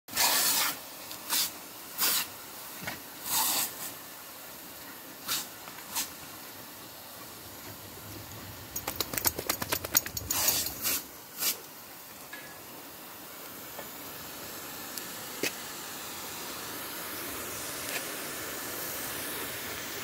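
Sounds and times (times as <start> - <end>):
sprinkler spraying with a hiss: 0.1 - 20.0
dogs snapping at water splashes: 8.5 - 11.0
sharp clicks: 8.7 - 10.8.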